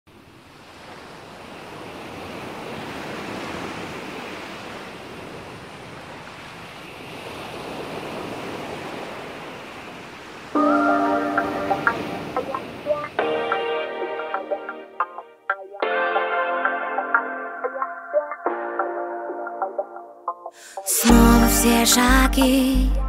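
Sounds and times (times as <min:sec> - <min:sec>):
ocean surf washing in: 0:00.1 - 0:22.4
music with sustained chords: 0:10.6 - 0:20.4, 0:21.0 - 0:23.0.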